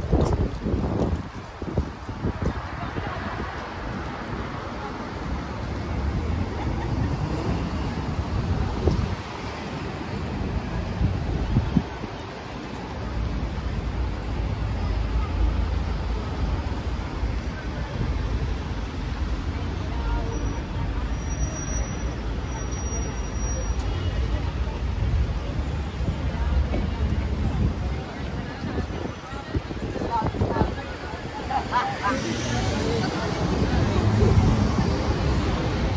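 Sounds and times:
road traffic rumble: 0:00.0 - 0:35.9
people talking: 0:02.3 - 0:07.4, 0:13.6 - 0:35.9.

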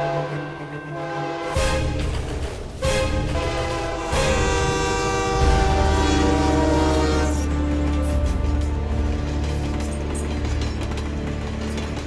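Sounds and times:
trailer music held chord: 0:00.0 - 0:10.8.

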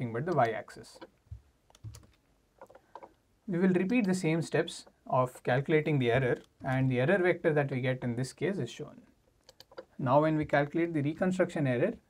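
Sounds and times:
faint keyboard taps: 0:01.3 - 0:03.1.

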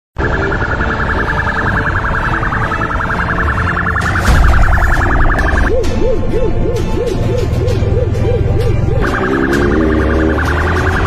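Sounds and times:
siren warbling and wailing: 0:00.2 - 0:11.0.

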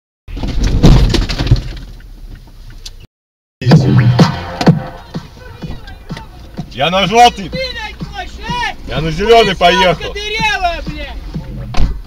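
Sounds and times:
car collision crunch: 0:00.3 - 0:02.8.

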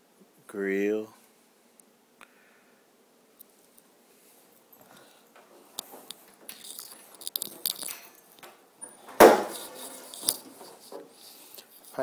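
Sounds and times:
small clicks and handling rustle: 0:04.8 - 0:08.6, 0:09.5 - 0:12.0.

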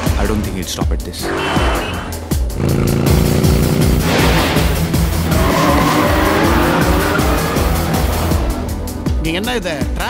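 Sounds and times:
car engine revving: 0:02.3 - 0:08.9
tyres squealing: 0:05.2 - 0:08.4.

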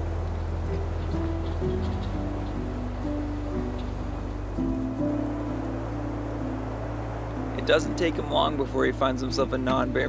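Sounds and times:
steady low drone: 0:00.0 - 0:10.0.

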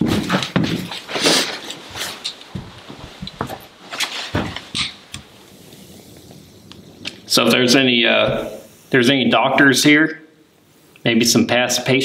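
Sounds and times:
footsteps on staircase: 0:00.0 - 0:01.1, 0:01.7 - 0:04.8.

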